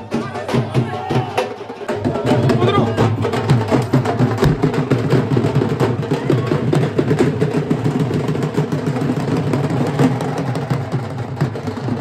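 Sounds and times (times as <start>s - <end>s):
drums beaten in fast rhythm: 0.0s - 12.0s
large crowd noise: 0.0s - 12.0s.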